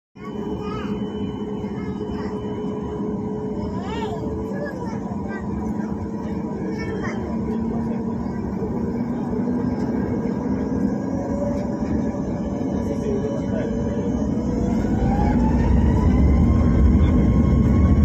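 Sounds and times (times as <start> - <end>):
airframe rumble in cabin: 0.2 - 18.0
jet engine whine: 0.2 - 18.0.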